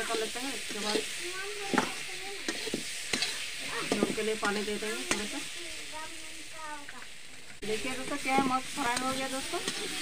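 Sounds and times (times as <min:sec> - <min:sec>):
metal spatula scraping pan: 0:00.0 - 0:05.5, 0:07.8 - 0:10.0
potatoes sizzling in oil: 0:00.0 - 0:10.0.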